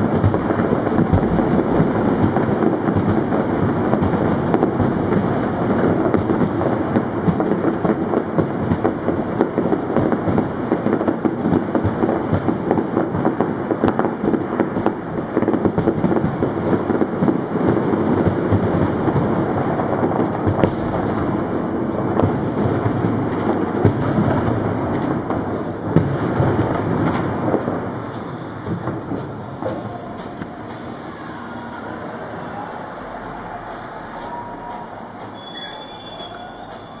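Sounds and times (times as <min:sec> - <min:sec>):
fireworks crackling and banging: 0:00.0 - 0:37.0.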